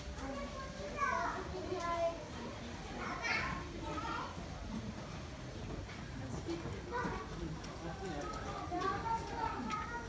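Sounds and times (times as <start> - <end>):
children's voices: 0.0 - 5.2, 6.8 - 10.0
people talking in background: 0.0 - 10.0.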